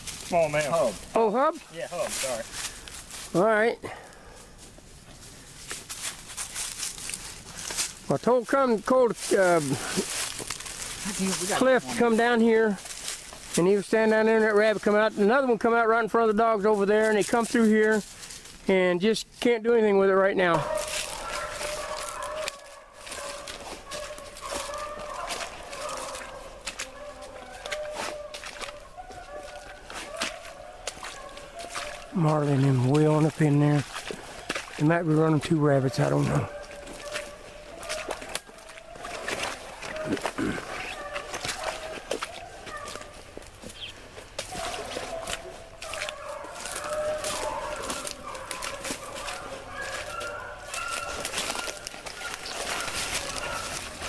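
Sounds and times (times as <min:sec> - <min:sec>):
dry leaf litter crackling: 0:00.0 - 0:15.4, 0:16.2 - 0:19.0, 0:20.4 - 0:54.0
hounds baying: 0:20.1 - 0:54.0.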